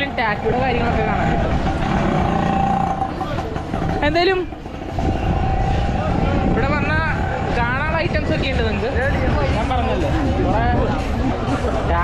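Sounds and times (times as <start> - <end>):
passing motor traffic: 0.0 - 12.0
people talking: 0.0 - 12.0.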